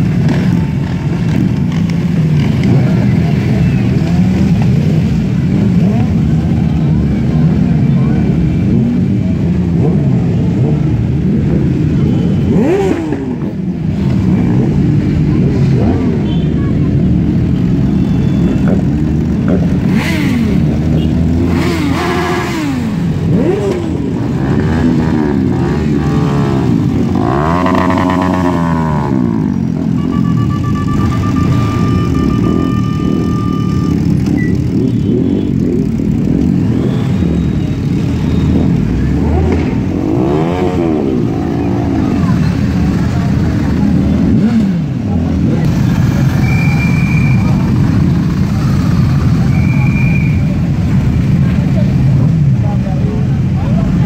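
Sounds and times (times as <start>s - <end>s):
motorcycles idling and revving: 0.0s - 54.0s.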